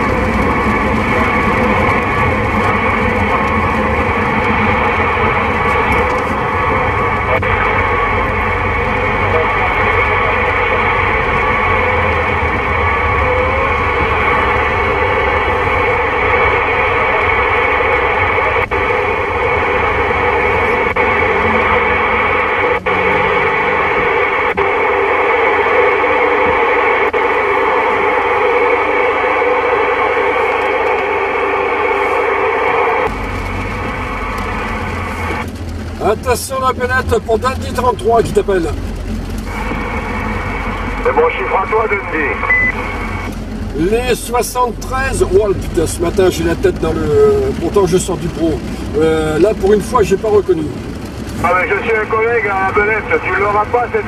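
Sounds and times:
radio static: 0.0 - 54.0.

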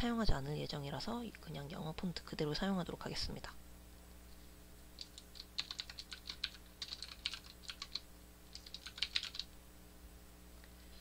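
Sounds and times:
computer keyboard typing: 5.0 - 9.5.

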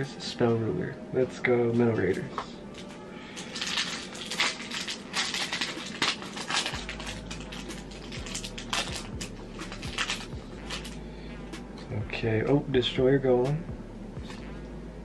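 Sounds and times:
foil wrapper crinkling and tearing: 2.8 - 11.0.

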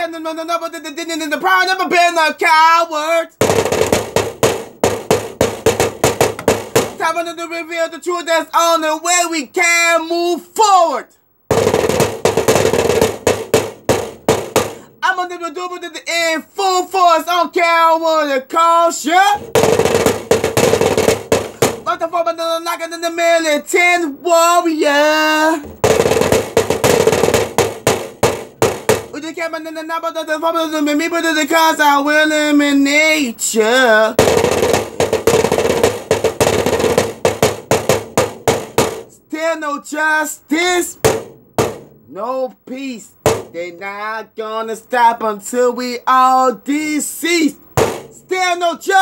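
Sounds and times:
drum strikes: 3.4 - 7.0, 11.5 - 15.0, 19.4 - 22.0, 25.5 - 29.2, 34.2 - 39.2, 40.9 - 42.2, 43.1 - 43.6, 47.6 - 48.4
stick knocking on hard surface: 3.4 - 7.0, 11.5 - 14.9, 19.4 - 21.9, 25.6 - 29.2, 34.2 - 39.1, 41.0 - 42.1, 43.2 - 43.6, 47.8 - 48.3.

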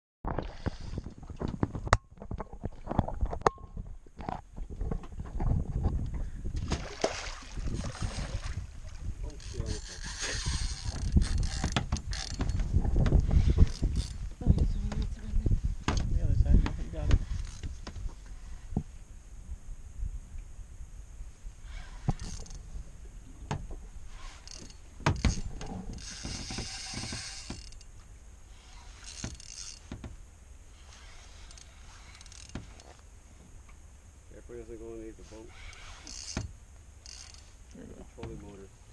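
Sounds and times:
clicks and knocks against hull: 0.3 - 8.6, 9.3 - 15.2, 15.8 - 18.9, 23.4 - 28.1, 29.1 - 30.2, 32.2 - 33.0
low rumble: 0.5 - 26.1
spinning reel being cranked: 9.4 - 12.4, 24.2 - 27.8, 28.6 - 29.8, 30.9 - 32.9, 35.5 - 37.5.

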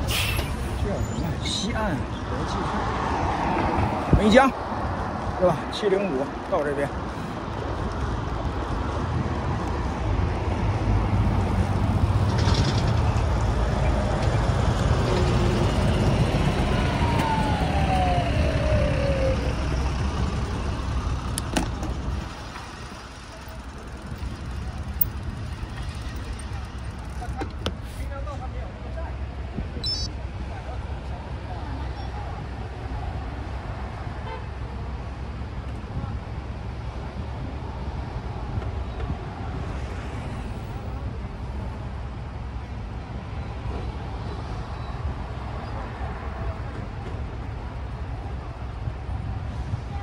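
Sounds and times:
traffic rumble: 0.0 - 50.0.

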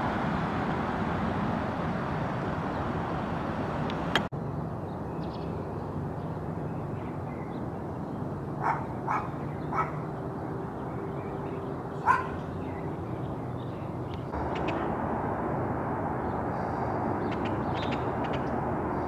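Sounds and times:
steady background noise: 0.0 - 19.0
dog barking: 8.6 - 10.0, 12.0 - 12.4.

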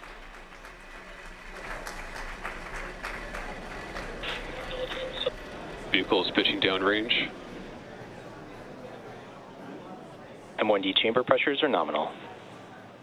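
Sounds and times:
crowd applauding: 0.0 - 7.5
faint voice: 2.8 - 10.7.

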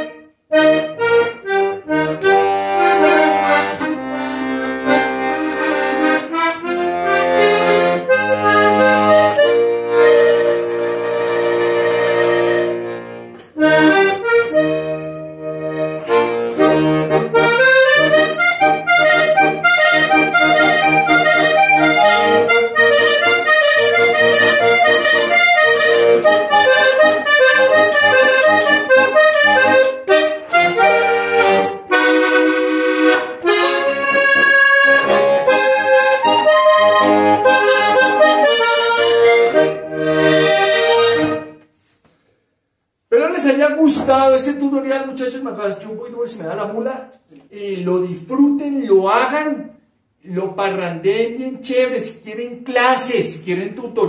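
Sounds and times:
button accordion playing: 0.0 - 41.9.

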